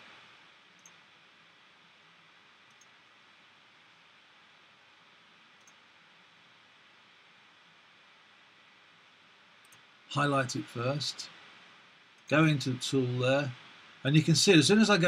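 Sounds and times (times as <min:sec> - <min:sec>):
faint steady hiss: 0:00.0 - 0:15.0
computer mouse clicks: 0:00.7 - 0:01.0, 0:02.6 - 0:03.0, 0:05.6 - 0:05.9, 0:09.6 - 0:09.9.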